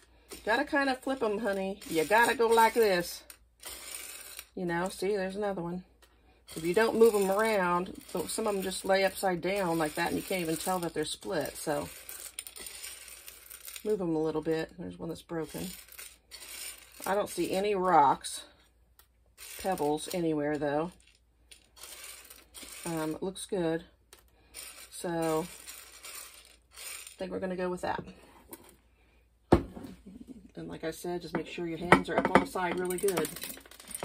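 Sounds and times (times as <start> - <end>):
dry beans clicking and rattling: 0.0 - 27.9, 31.3 - 34.0.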